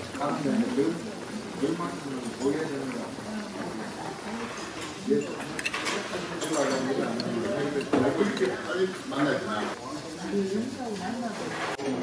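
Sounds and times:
indistinct talking: 0.0s - 12.0s
utensils clinking on dishes: 2.0s - 3.1s, 4.3s - 9.4s.

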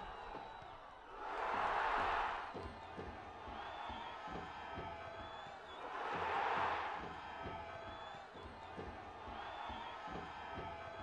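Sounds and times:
stadium crowd roaring: 0.0s - 11.0s.

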